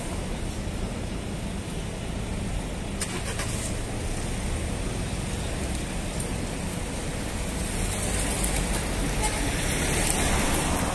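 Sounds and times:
road traffic rumble: 0.0s - 10.9s.

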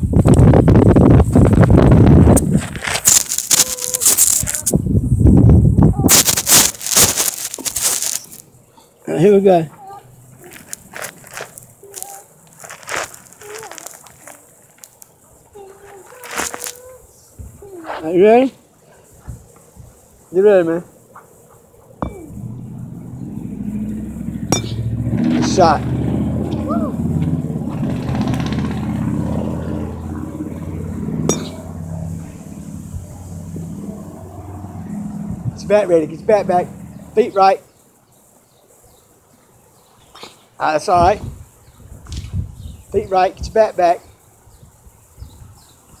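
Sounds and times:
sharp knocks: 24.5s - 25.4s.

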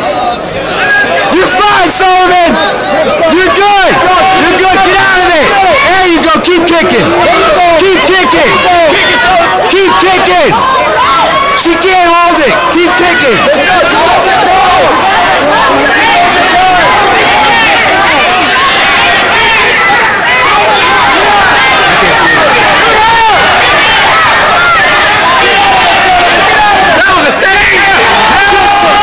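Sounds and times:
crowd yelling: 0.0s - 29.0s.

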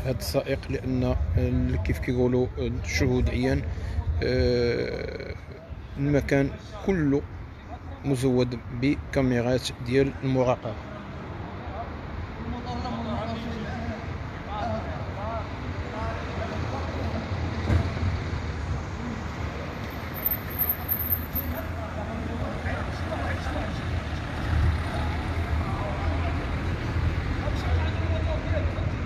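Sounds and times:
passing cars low rumble: 10.9s - 29.0s.

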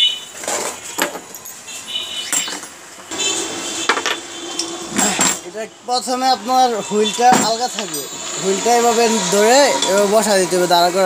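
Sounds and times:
metal parts clinking: 0.3s - 2.8s.

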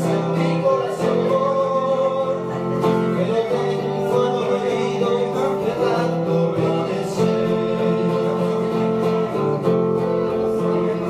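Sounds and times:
acoustic guitar ballad: 0.0s - 11.0s.

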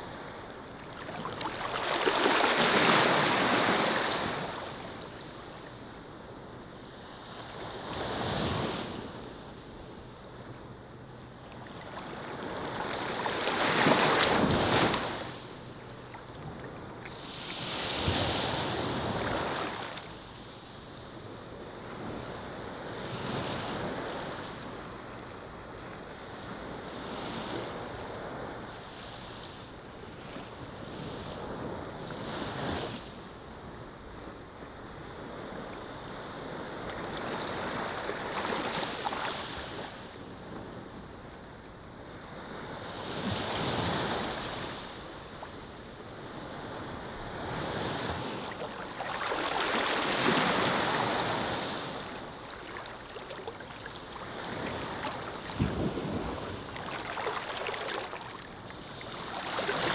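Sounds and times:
waves washing onto beach: 0.0s - 6.4s, 11.5s - 25.0s, 42.1s - 59.9s.

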